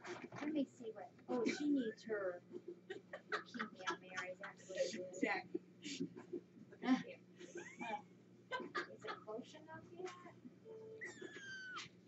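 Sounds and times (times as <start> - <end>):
kitten mewing: 11.0 - 12.0.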